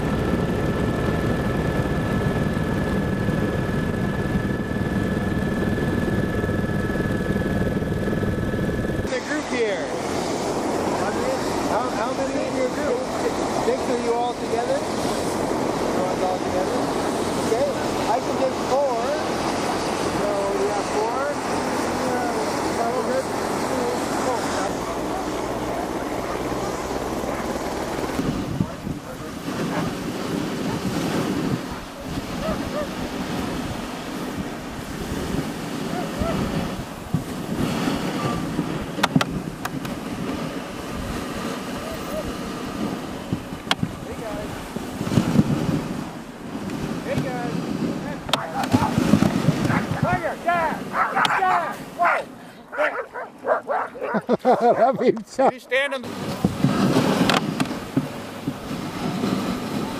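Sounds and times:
wind on microphone: 0.0s - 55.0s, 55.8s - 59.9s
sled runners hissing on snow: 9.1s - 43.3s, 44.1s - 54.6s, 56.1s - 59.9s.

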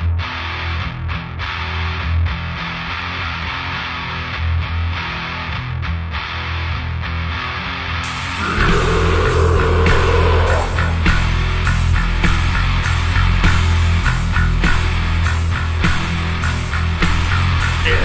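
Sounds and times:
distorted electric guitar riff: 8.0s - 18.0s.

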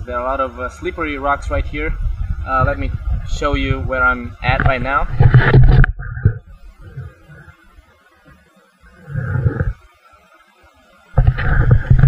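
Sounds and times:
wind buffeting microphone: 0.0s - 7.6s, 11.2s - 12.0s.

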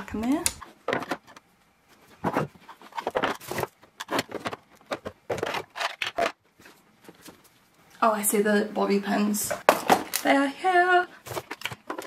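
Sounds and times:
plastic trays knocking and scraping: 0.2s - 1.5s, 2.1s - 7.4s, 9.5s - 10.2s, 11.2s - 12.0s.

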